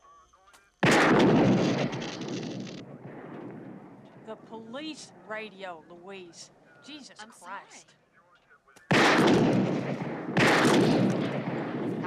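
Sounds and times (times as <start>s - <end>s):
pistol shot with echo: 0.8s - 4.3s, 8.8s - 12.0s.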